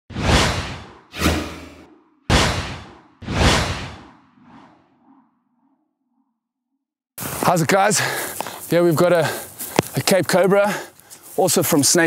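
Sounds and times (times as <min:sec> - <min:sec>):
whoosh sound effects: 0:00.1 - 0:05.9
deep rumble: 0:00.4 - 0:06.5.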